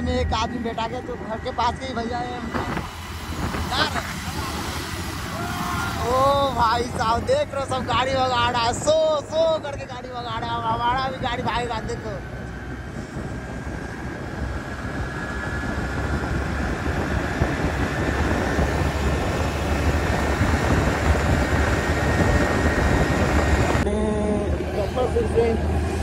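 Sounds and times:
motorcycle engine drone: 0.0 - 26.0
wind rushing over microphone: 0.0 - 26.0.

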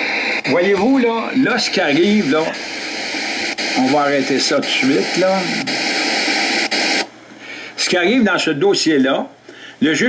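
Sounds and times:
static hiss: 0.0 - 10.0
man speaking: 0.4 - 2.7, 3.6 - 5.8, 7.8 - 10.0.

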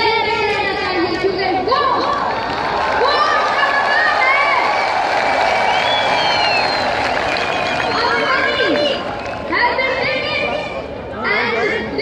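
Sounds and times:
crowd cheering: 2.0 - 10.2.

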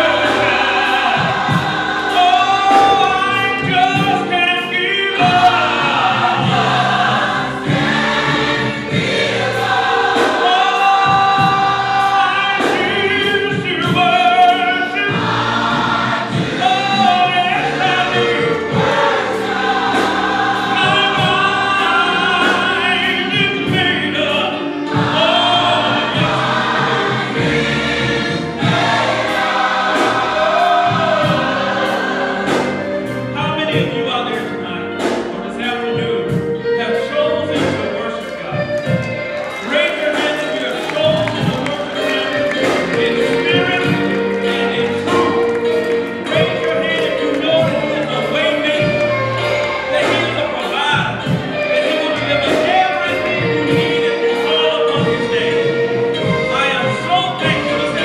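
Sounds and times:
gospel choir singing: 0.0 - 58.0.

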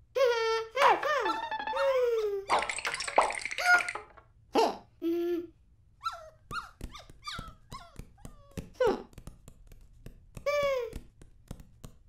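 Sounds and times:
cartoon dog crying: 0.3 - 2.5.

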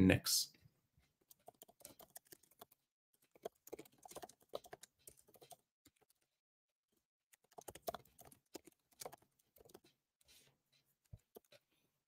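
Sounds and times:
typing on computer keyboard: 1.2 - 6.2, 7.3 - 9.9, 11.2 - 11.6.

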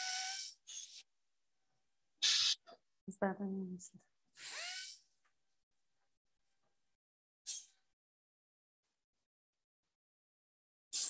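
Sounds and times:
dental drill whine: 0.0 - 1.0, 4.4 - 5.1.

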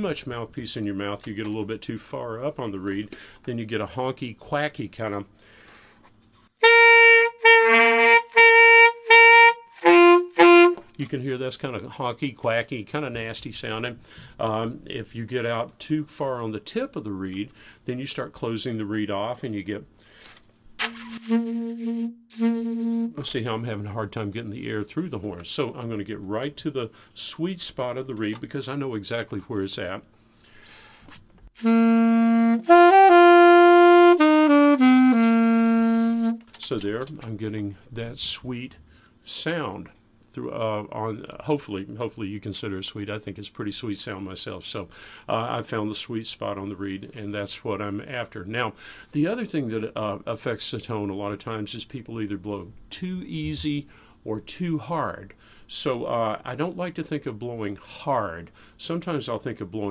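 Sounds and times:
honky saxophone notes: 6.6 - 11.0, 20.8 - 23.4, 31.6 - 36.5.

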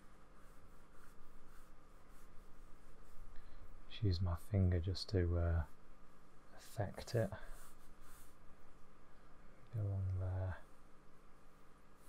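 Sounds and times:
paintbrush brushing on paper: 0.0 - 8.7, 10.4 - 12.0.

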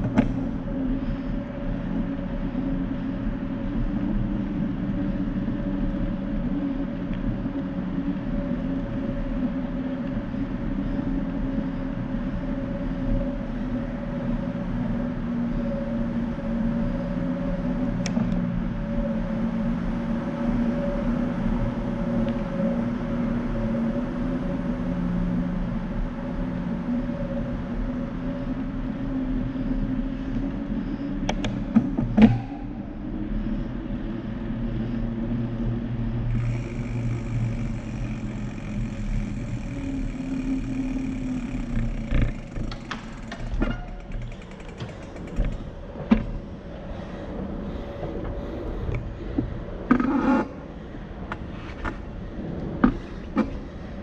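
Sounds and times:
bicycle rolling in tunnel: 0.0 - 54.0.

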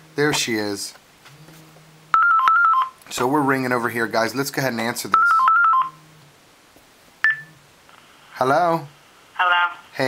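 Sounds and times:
phone ringtone: 2.2 - 3.0, 5.2 - 6.0.

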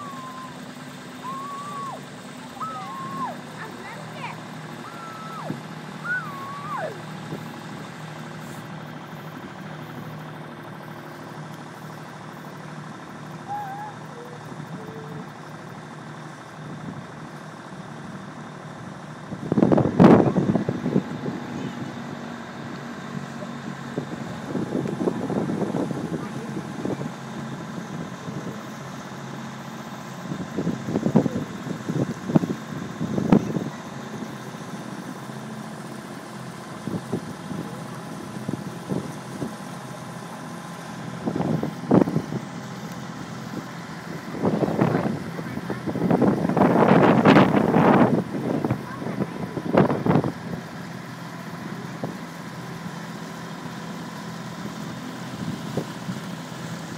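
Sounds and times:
motor boat engine running: 0.0 - 56.9.

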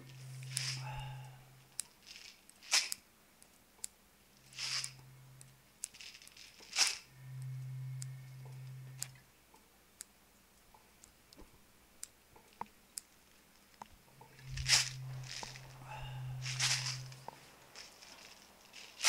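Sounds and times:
rustling: 0.0 - 3.1, 4.3 - 9.2, 12.4 - 19.0
low steady hum: 0.0 - 19.0.

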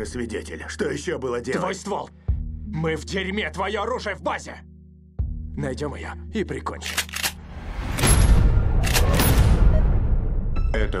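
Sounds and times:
trailer music: 0.0 - 11.0.

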